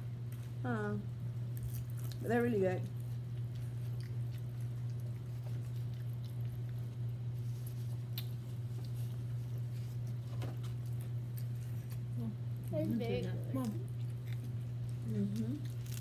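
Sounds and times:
steady low hum: 0.0s - 16.0s
chewing: 2.8s - 16.0s.

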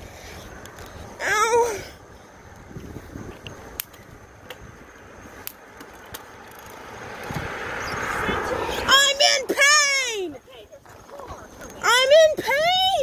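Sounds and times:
bicycle rolling: 0.0s - 13.0s
wind noise on microphone: 2.0s - 5.6s, 6.3s - 9.2s
sharp clicks: 3.4s - 4.6s.

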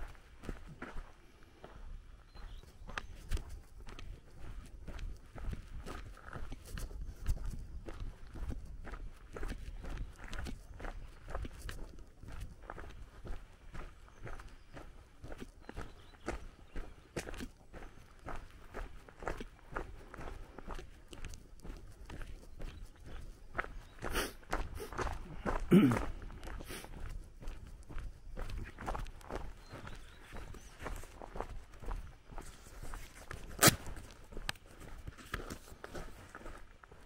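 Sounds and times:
footsteps on gravel: 0.0s - 37.0s.

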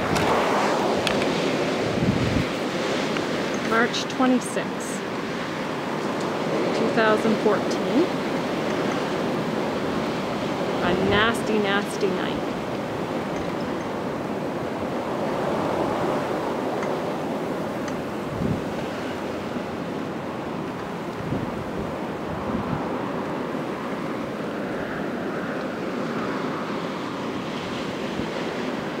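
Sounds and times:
blizzard wind blowing: 0.0s - 29.0s
wind buffeting microphone: 0.0s - 29.0s.

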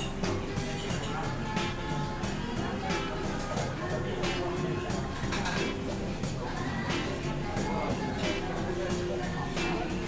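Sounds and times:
background music: 0.0s - 10.0s
chatter of diners: 0.0s - 10.0s
clatter of tableware: 5.2s - 5.7s.

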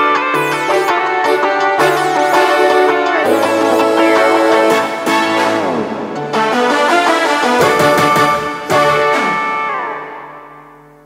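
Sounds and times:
backing track chord ringing: 0.0s - 11.0s.

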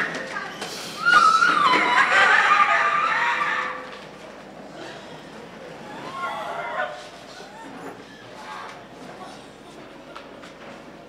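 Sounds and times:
congregation room noise: 0.0s - 11.0s.

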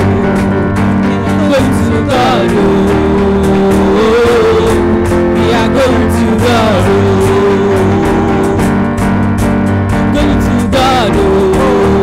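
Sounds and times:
person singing: 0.0s - 9.0s, 10.0s - 12.0s
live worship band music: 0.0s - 12.0s.

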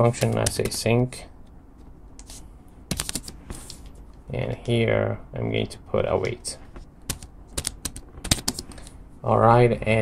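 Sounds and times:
computer keyboard typing: 0.1s - 0.8s, 7.1s - 8.8s.

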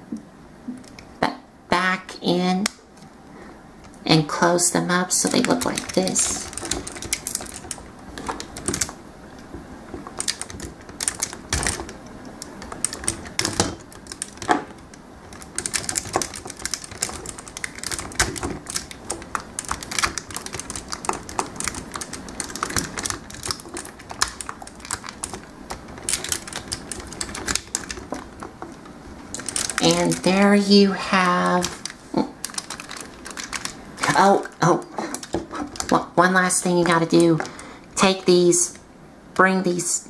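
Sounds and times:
plastic toy parts clicking: 5.2s - 30.3s, 31.3s - 36.0s.

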